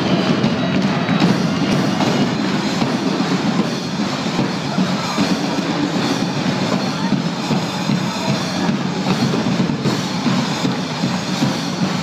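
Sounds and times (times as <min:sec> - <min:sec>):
live band playing loud music: 0:00.0 - 0:12.0.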